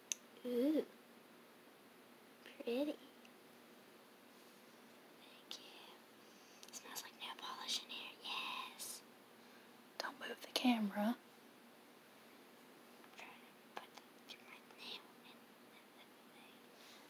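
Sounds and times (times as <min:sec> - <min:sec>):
whispered speech: 0:13.1 - 0:16.6.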